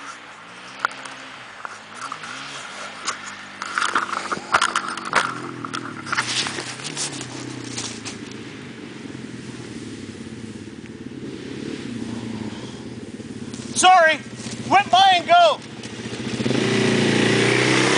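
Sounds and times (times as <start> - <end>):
dirt bike engine revving: 0.0 - 17.9
camera knocks and scrapes: 1.7 - 8.2.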